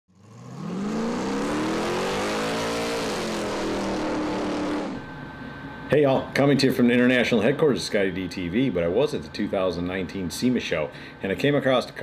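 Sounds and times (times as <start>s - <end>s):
car engine revving: 0.1s - 5.3s.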